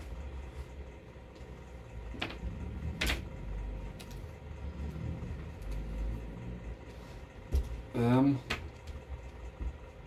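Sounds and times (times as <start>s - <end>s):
faint hum: 0.0s - 10.0s
steady low rumble: 0.0s - 10.0s.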